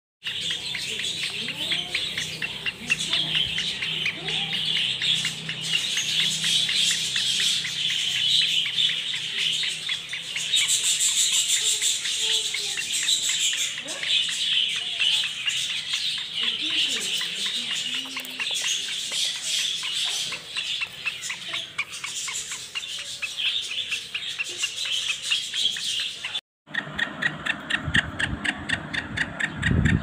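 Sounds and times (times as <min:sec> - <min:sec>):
birds chirping: 0:00.2 - 0:30.0.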